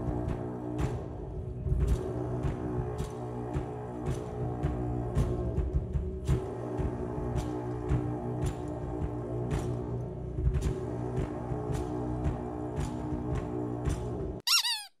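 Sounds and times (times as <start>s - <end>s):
horns holding low drone: 0.0s - 14.2s
short falling chirp: 14.5s - 15.0s.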